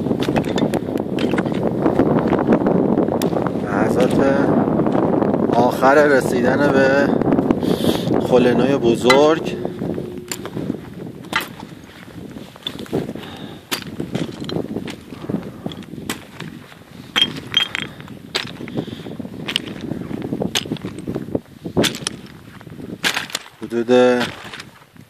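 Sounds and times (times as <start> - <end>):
low rustling: 7.4 - 18.7
footsteps on loose scree: 8.8 - 21.2, 21.8 - 24.9.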